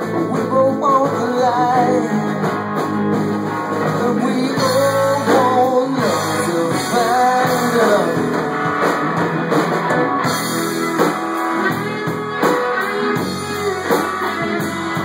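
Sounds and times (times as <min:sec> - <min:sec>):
electric guitar lead bending pitch: 0:00.0 - 0:15.0
rock band playing: 0:00.0 - 0:15.0.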